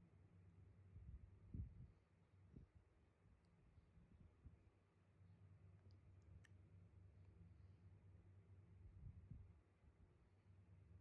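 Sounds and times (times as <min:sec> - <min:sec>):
faint low hum: 0:00.0 - 0:11.0
tiny faint clicks: 0:03.4 - 0:03.6, 0:05.7 - 0:07.4.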